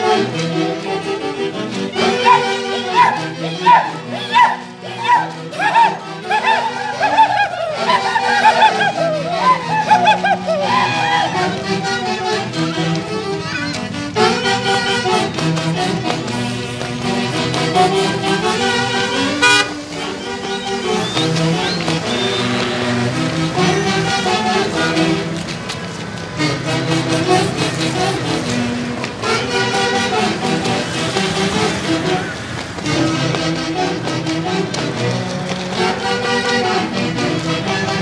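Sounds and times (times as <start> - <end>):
live folk band music: 0.0 - 38.0
vehicle horn toot: 19.2 - 19.9.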